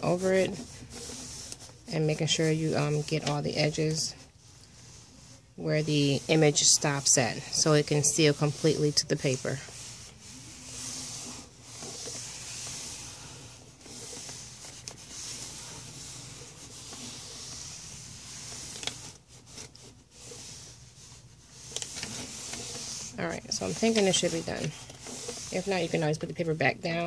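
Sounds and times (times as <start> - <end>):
iron swishing over paper: 0.0 - 27.0.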